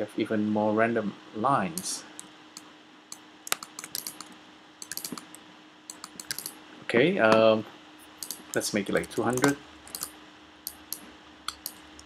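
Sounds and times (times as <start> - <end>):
faint steady hum: 0.0 - 12.0
keyboard key clicks: 3.1 - 6.5, 8.2 - 10.1, 10.7 - 11.9.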